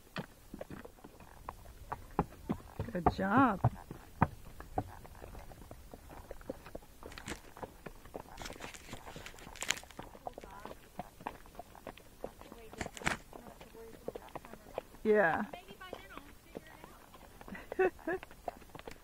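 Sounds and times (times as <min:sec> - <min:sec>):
horse hoofbeats on dirt trail: 0:00.0 - 0:19.0.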